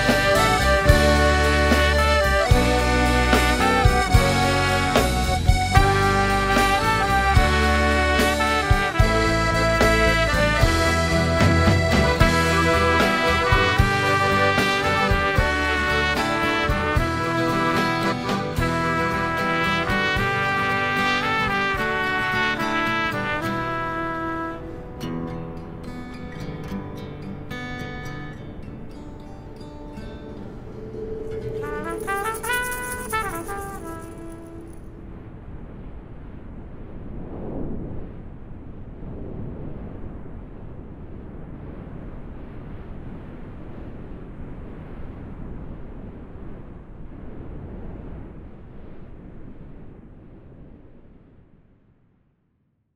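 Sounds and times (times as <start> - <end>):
band with trumpet bass and guitar: 0.0 - 25.6, 30.9 - 35.1
surf: 0.0 - 51.4
wind: 0.0 - 52.0.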